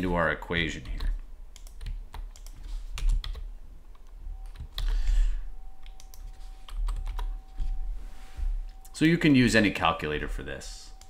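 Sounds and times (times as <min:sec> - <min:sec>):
keyboard typing: 0:00.8 - 0:05.0, 0:05.8 - 0:07.6.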